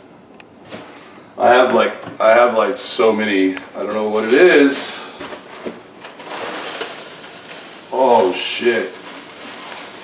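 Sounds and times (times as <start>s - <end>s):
cereal box and bag rustling: 4.2s - 10.0s.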